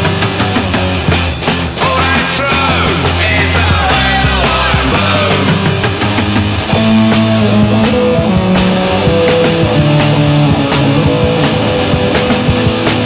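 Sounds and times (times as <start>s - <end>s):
bass guitar: 0.0s - 13.0s
distorted electric guitar: 0.0s - 13.0s
driving drum beat: 0.0s - 13.0s.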